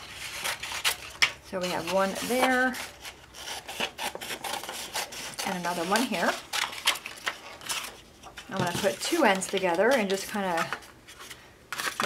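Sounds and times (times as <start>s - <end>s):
scissors cutting paper: 0.0s - 7.9s.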